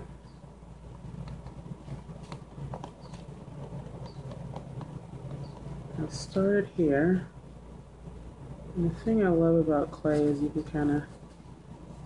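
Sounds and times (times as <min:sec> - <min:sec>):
low steady hum: 0:00.0 - 0:12.0
faint clicks and taps: 0:00.9 - 0:05.8.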